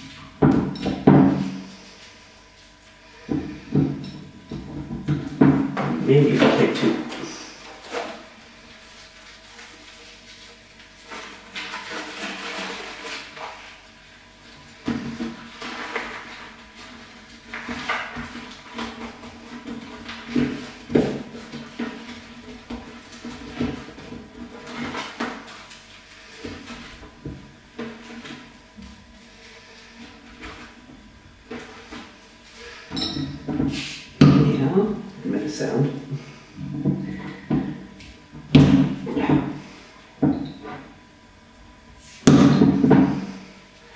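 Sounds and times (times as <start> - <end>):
paper filters rustling: 6.0 - 27.2.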